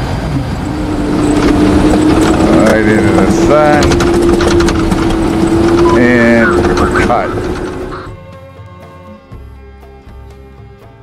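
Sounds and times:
steady whine: 0.0s - 8.2s
vehicle engine and road noise: 0.0s - 9.5s
rattles: 0.4s - 8.1s
person speaking: 5.7s - 8.1s.

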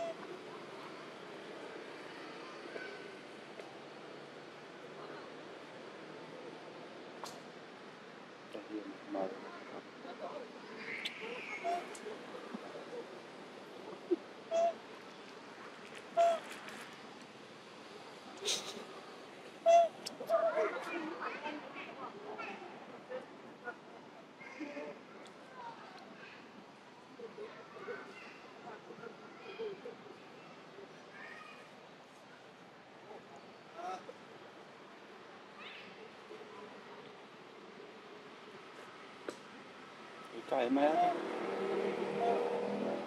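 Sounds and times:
outdoor background hiss: 0.0s - 43.0s
quiet forest background: 0.0s - 43.0s
macaque calls: 10.8s - 12.0s, 14.5s - 14.8s, 16.2s - 16.4s, 19.6s - 20.7s.

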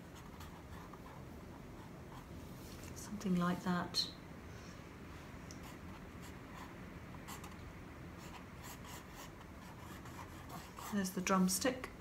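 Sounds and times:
drawing stick scratching on paper: 8.2s - 11.2s.

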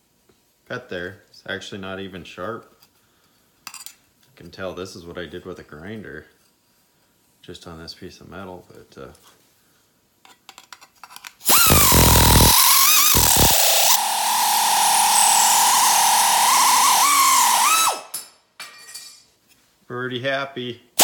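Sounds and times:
pneumatic nibbler cutting sheet metal: 11.4s - 18.2s.

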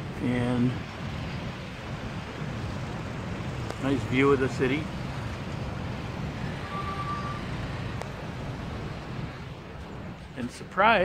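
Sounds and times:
distant city traffic rumble: 0.0s - 11.0s
faint short high tone: 6.6s - 7.5s.

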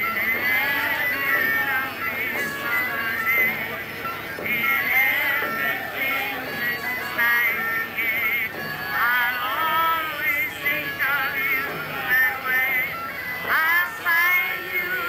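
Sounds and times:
group singing: 0.0s - 15.0s.

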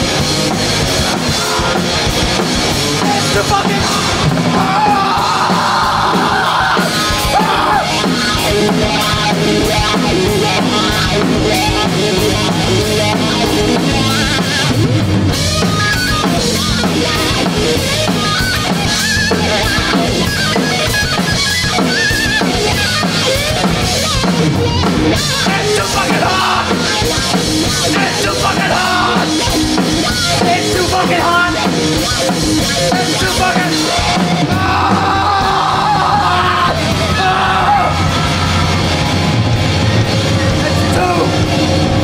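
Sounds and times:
grunge rock band playing: 0.0s - 42.0s
wavering lead guitar notes: 0.0s - 42.0s.

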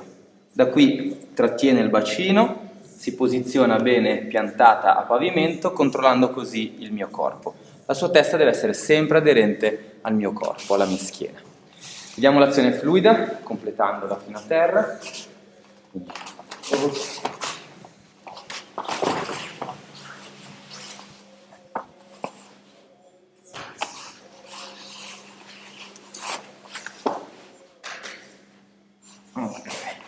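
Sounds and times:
feet shuffling on mats: 16.0s - 22.8s.

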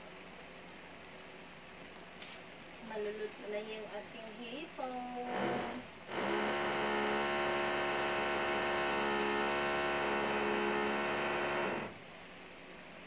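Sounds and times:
loud electrical hum: 4.5s - 12.1s.

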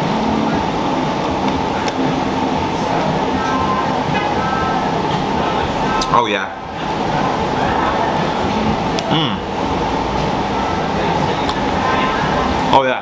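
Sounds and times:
constant hum: 0.0s - 13.0s
faint voices: 0.0s - 13.0s
music: 0.0s - 13.0s.

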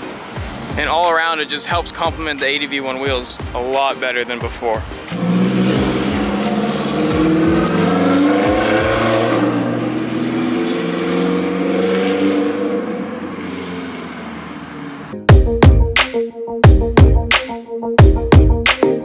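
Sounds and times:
background music: 0.0s - 13.4s, 15.1s - 19.0s
loud electronic music: 4.4s - 12.0s, 15.2s - 19.0s
car engine revving: 5.0s - 15.2s.

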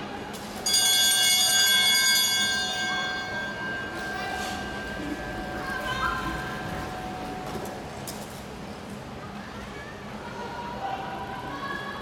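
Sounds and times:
bell ringing: 0.6s - 8.0s.

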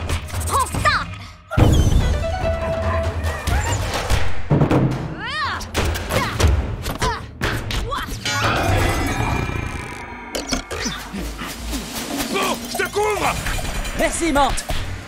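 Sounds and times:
film score music: 0.0s - 15.0s.

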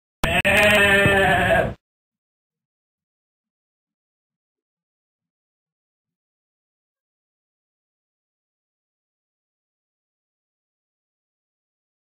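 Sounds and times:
sheep bleating: 0.2s - 1.8s.

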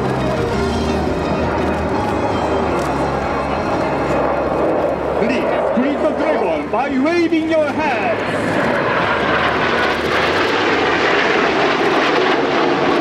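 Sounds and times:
loud rushing roar: 0.0s - 13.0s
indistinct commentary: 2.8s - 8.8s.

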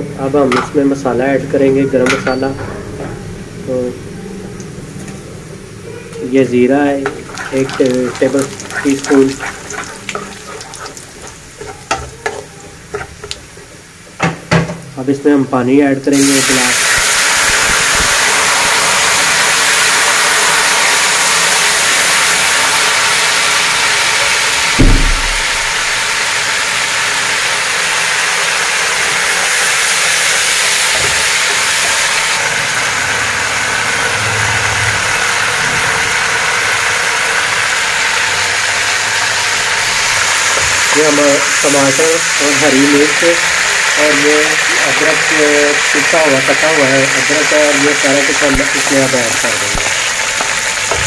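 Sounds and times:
water sizzling in hot fat: 6.2s - 14.3s, 16.1s - 51.0s
wooden spoon knocking pot: 7.0s - 13.5s.

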